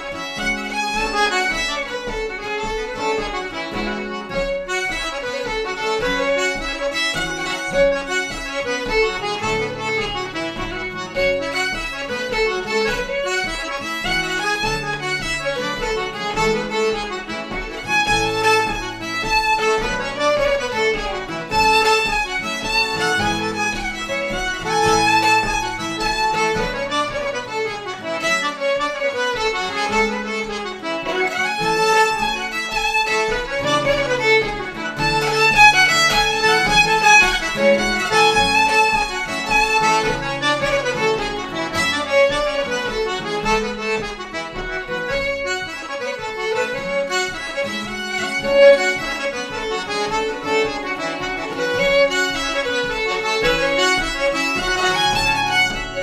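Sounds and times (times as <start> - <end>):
acoustic guitar chords: 0.0 - 56.0
button accordion: 0.0 - 56.0
fiddle melody: 0.0 - 56.0.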